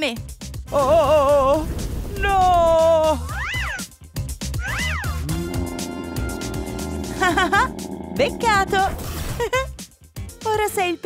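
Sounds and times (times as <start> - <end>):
background music: 4.7 - 9.7.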